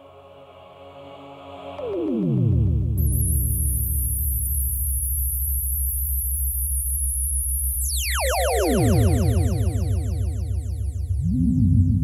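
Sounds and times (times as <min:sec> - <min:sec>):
low throbbing pulse: 0:02.3 - 0:12.0.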